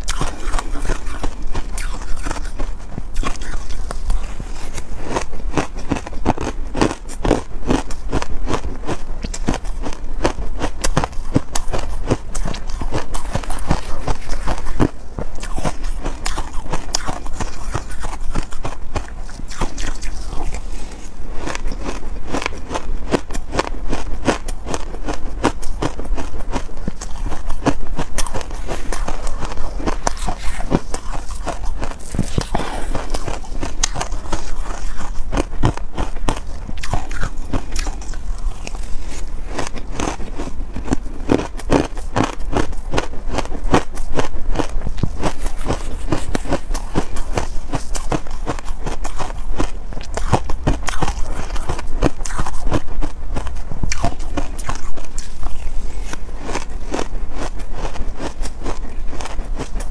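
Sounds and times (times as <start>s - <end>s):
ice crunching while chewed: 0.0s - 59.9s.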